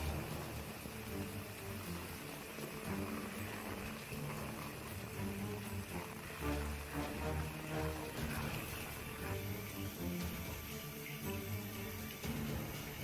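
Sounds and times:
background music: 0.0 - 13.0
heavy rain pouring: 0.0 - 13.0.

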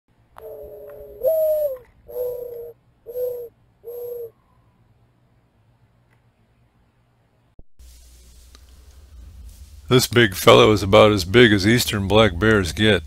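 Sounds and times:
dove cooing: 0.4 - 4.5.

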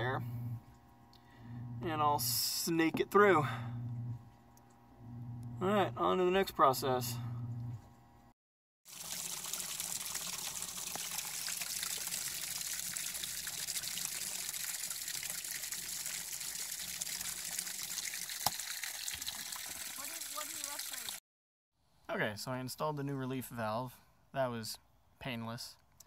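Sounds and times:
water pouring from tank: 8.9 - 21.2.

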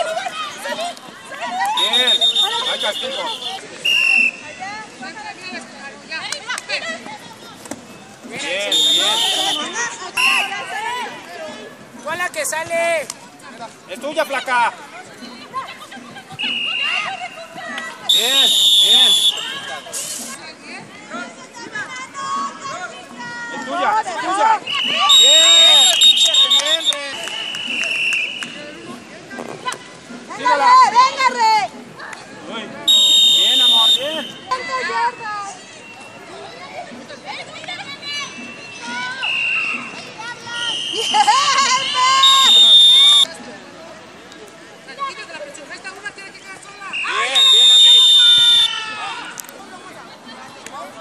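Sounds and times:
players shouting: 0.0 - 4.4, 8.4 - 11.3, 32.8 - 35.6, 46.6 - 49.4
sports whistle blast: 1.7 - 4.5, 8.7 - 10.6, 16.4 - 17.3, 18.1 - 20.1, 24.7 - 28.6, 32.9 - 34.6, 39.2 - 39.9, 40.6 - 43.3, 46.9 - 48.8.

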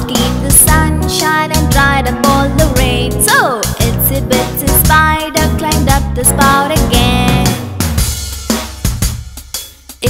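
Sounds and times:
steady bass: 0.0 - 9.5
drum kit hits with cymbals: 6.8 - 10.0.

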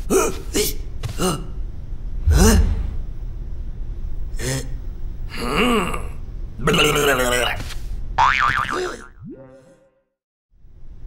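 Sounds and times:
cartoon boing effect: 8.2 - 9.9
cartoon character vocal noises: 8.7 - 9.9.

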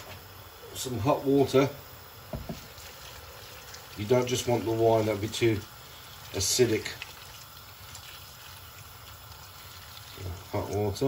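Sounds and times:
hot water pouring into metal pot: 0.0 - 11.0
water splashing over shells: 2.3 - 11.0.

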